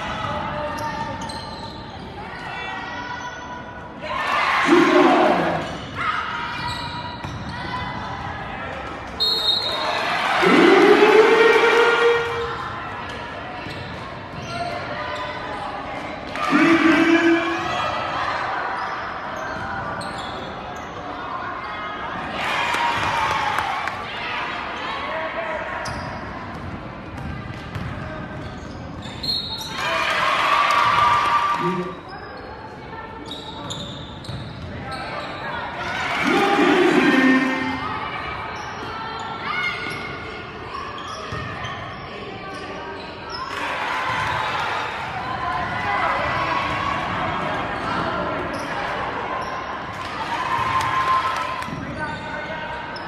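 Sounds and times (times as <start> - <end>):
voices of players and spectators: 0.0 - 53.0
shoe squeaks: 0.7 - 2.1, 6.6 - 7.7, 18.7 - 21.0, 28.4 - 29.8, 33.2 - 35.6, 38.5 - 43.5
scattered voices: 10.3 - 12.6, 35.9 - 38.2.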